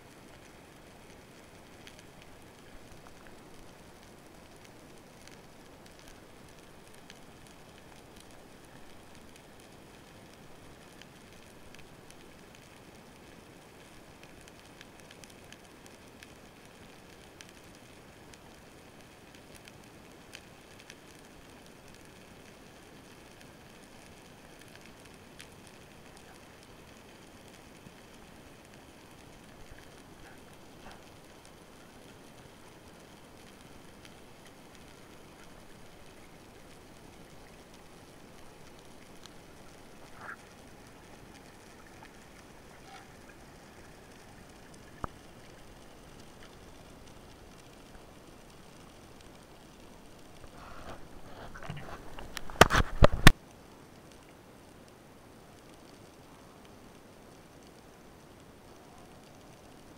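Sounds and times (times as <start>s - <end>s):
sharp underwater clicks: 38.4s - 48.0s, 50.4s - 53.4s.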